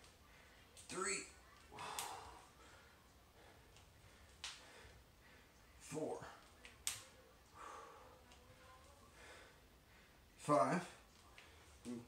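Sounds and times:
man breathing sharply: 1.8s - 2.8s, 7.6s - 8.2s.

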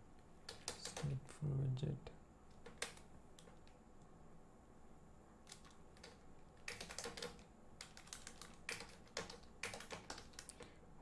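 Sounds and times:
computer keyboard typing: 0.4s - 1.2s, 2.5s - 3.8s, 5.4s - 10.6s.

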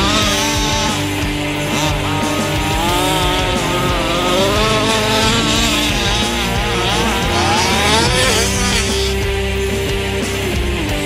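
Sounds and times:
background music: 0.0s - 11.0s
small two-stroke engine revving: 0.0s - 11.0s.

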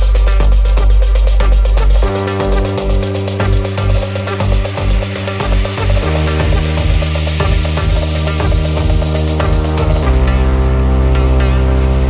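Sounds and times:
melodic techno music: 0.0s - 12.0s.

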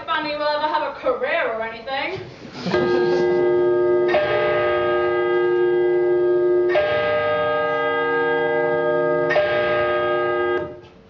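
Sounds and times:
bells ringing: 2.8s - 10.6s.

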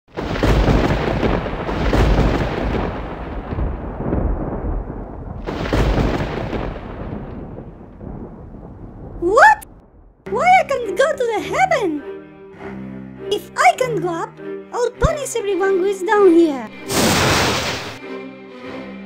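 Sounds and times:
deep rumbling thunder: 0.1s - 10.4s.

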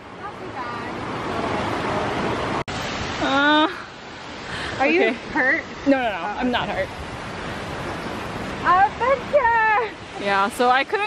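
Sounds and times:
creek water flowing: 0.0s - 11.0s.

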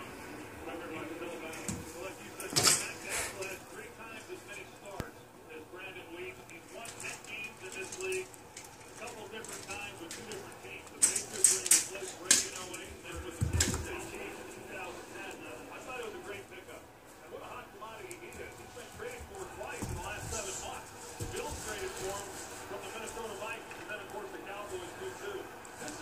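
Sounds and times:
faint voices murmuring: 0.0s - 26.0s.

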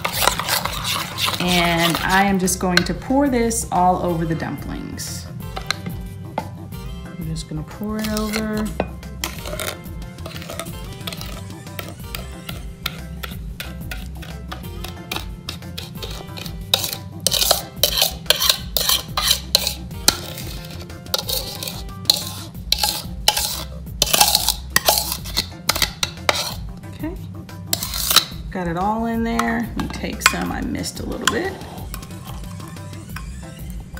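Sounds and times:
metal spoon scraping a bowl: 0.0s - 3.2s, 5.4s - 6.0s, 7.8s - 26.8s, 27.7s - 28.4s, 29.4s - 33.9s
quiet background music: 0.0s - 33.9s.

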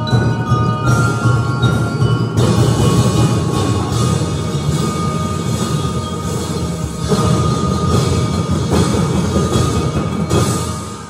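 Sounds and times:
drums: 0.0s - 11.0s
mallet-struck bar instruments: 0.0s - 11.0s
steady held high note: 0.0s - 11.0s.

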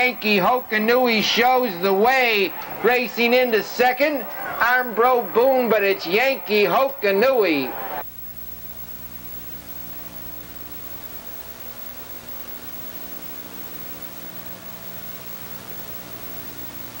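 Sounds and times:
low electrical hum: 0.0s - 17.0s
steady recording hiss: 0.0s - 17.0s.

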